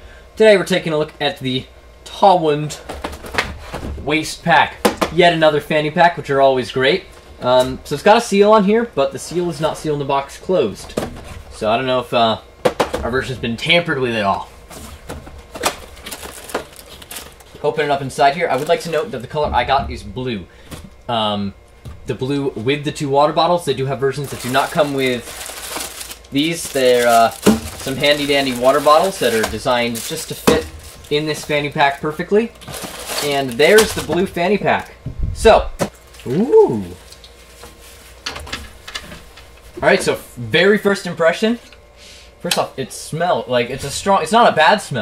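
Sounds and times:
fabric pack handling noise: 0:24.2 - 0:31.5, 0:32.6 - 0:34.1
person sniffing: 0:42.0 - 0:42.4.

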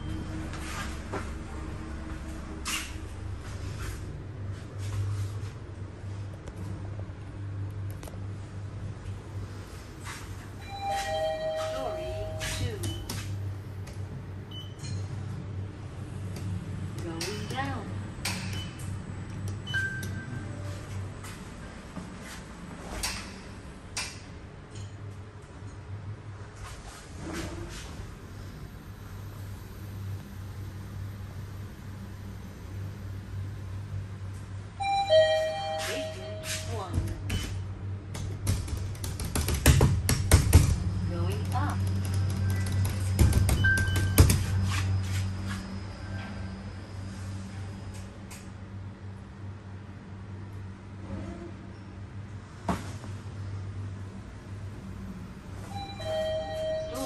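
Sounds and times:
elevator low hum: 0:00.0 - 0:57.0.

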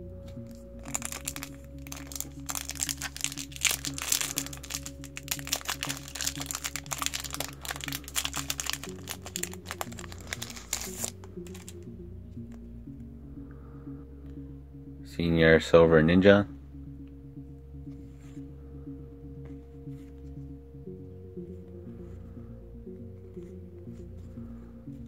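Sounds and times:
background music: 0:00.0 - 0:25.0
foil wrapper tearing and crinkling: 0:00.8 - 0:11.7.

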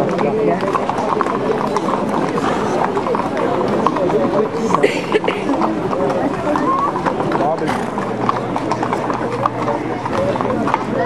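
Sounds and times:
crowd chatter: 0:00.0 - 0:11.0
horse hooves clip-clopping on street: 0:00.0 - 0:11.0.

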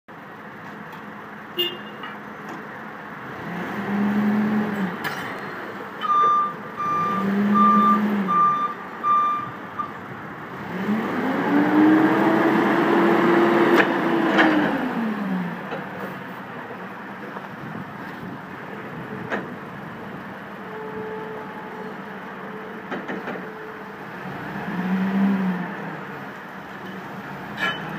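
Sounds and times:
forklift engine revving: 0:03.2 - 0:05.0, 0:06.0 - 0:15.8, 0:24.0 - 0:26.4
reversing alarm beeping: 0:06.0 - 0:10.0.

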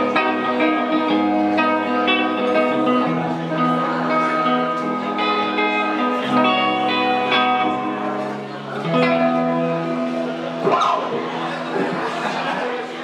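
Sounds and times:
electric guitar sustained chords: 0:00.0 - 0:11.9.

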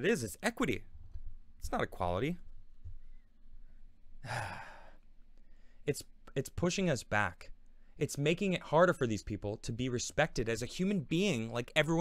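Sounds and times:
man speaking: 0:00.0 - 0:00.8, 0:01.6 - 0:02.4, 0:05.9 - 0:12.0
man sighing: 0:04.2 - 0:05.0.

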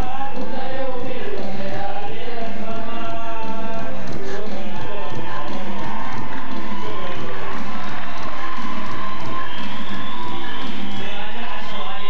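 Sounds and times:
crowd cheering: 0:00.0 - 0:12.0
live devotional music: 0:00.0 - 0:12.0.

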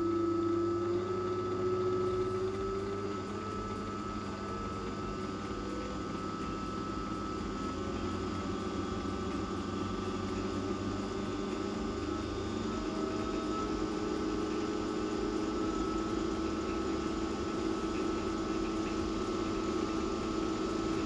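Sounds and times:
pump mechanical hum: 0:00.0 - 0:21.0.

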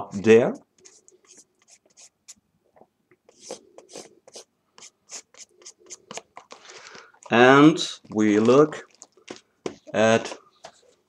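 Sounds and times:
marker drawing on cardboard: 0:00.8 - 0:02.4, 0:03.3 - 0:06.2.

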